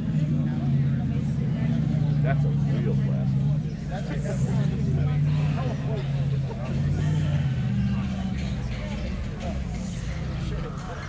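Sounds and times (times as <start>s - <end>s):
people talking: 0.0s - 11.0s
vehicle engine idling: 0.0s - 11.0s.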